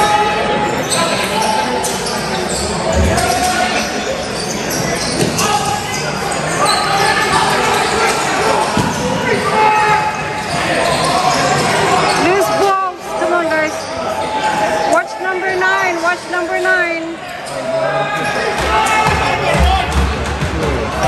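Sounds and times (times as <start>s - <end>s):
voices echoing in arena: 0.0s - 21.0s.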